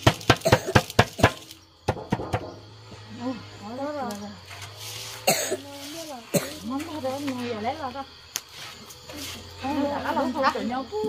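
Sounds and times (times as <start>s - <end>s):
sharp cough: 0.4s - 0.8s, 5.2s - 5.6s, 6.3s - 6.6s
woman talking: 3.1s - 4.5s, 5.6s - 8.2s, 9.4s - 11.0s.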